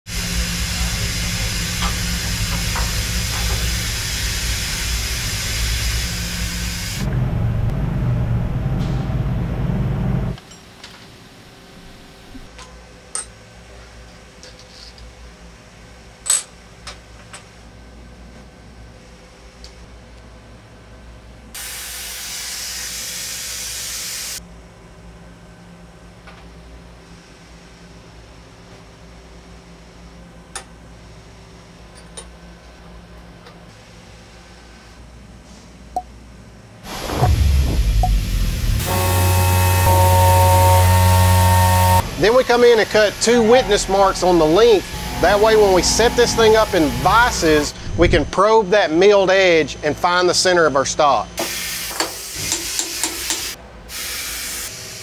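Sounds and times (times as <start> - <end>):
loud steady hiss: 0.1 - 7.1, 21.6 - 24.4, 36.8 - 50.3, 51.0 - 55.0
low hum: 0.1 - 10.4, 36.8 - 48.4.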